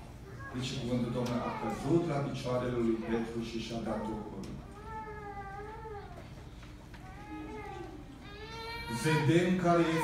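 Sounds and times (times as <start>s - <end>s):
young child wailing: 0.2s - 2.2s, 2.9s - 6.4s, 7.0s - 10.0s.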